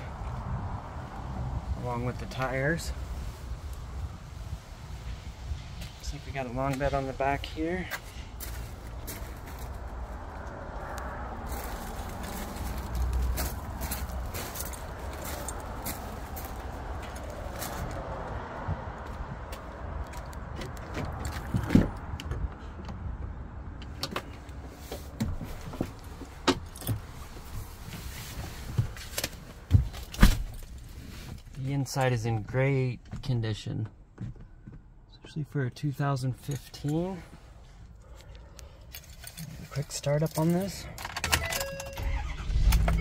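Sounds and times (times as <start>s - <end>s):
outdoor background rumble: 0.0s - 43.0s.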